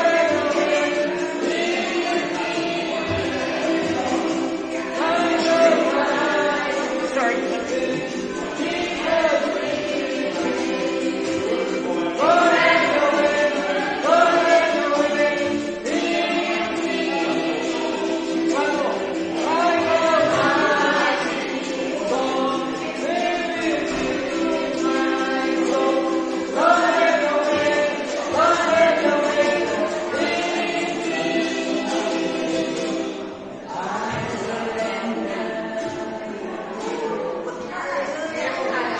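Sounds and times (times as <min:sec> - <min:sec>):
group singing together: 0:00.0 - 0:38.9
ukulele strumming: 0:00.0 - 0:38.9.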